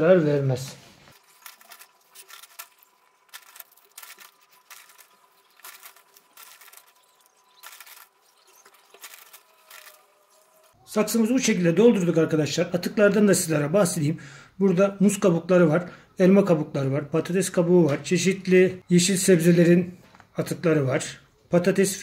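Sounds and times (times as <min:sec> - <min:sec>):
soil rustling: 0:01.0 - 0:10.8.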